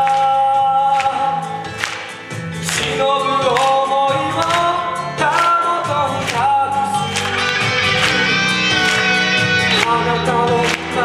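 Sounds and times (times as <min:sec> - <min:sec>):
live band accompaniment: 0:00.0 - 0:11.0
sharp percussion strikes: 0:00.9 - 0:11.0.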